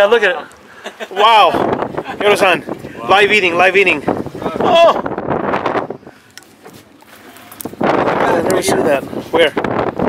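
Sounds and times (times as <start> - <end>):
wind on microphone: 1.3 - 10.0.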